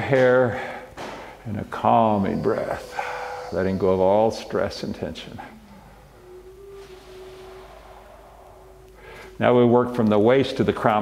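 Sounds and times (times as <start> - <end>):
faint steady tone: 1.8 - 10.9.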